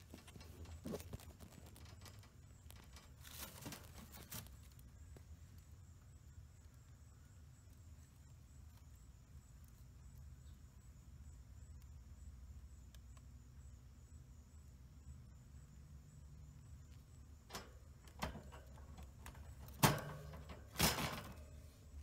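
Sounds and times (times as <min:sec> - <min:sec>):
rabbit rustling in hay: 0:00.0 - 0:04.9
faint steady hum: 0:00.0 - 0:22.0.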